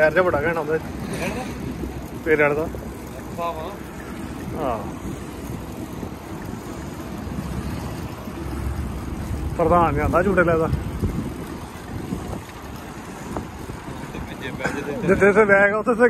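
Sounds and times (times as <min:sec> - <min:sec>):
wind noise on microphone: 0:00.0 - 0:15.3.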